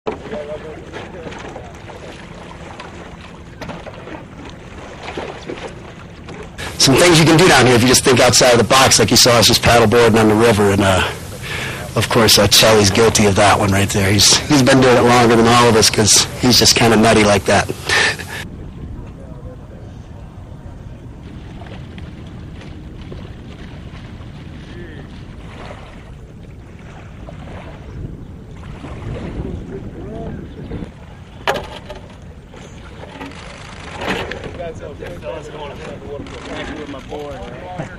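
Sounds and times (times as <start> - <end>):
water lapping and splashing: 0.1 - 37.9
faint voices: 6.6 - 21.7
wind on microphone: 9.4 - 33.2.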